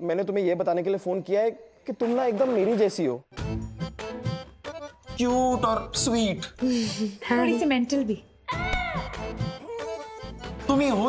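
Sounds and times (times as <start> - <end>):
comedy music: 3.4 - 11.0.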